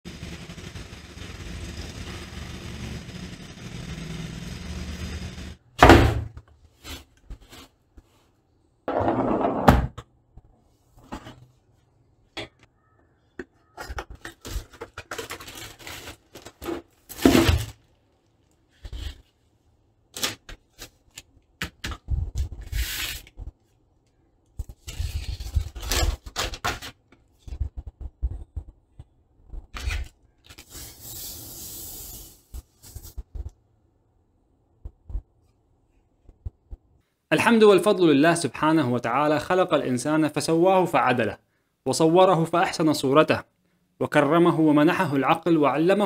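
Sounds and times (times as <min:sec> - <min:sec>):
packaging rustles and taps: 0:13.7 - 0:17.5
plastic wrap crinkling: 0:14.3 - 0:18.7.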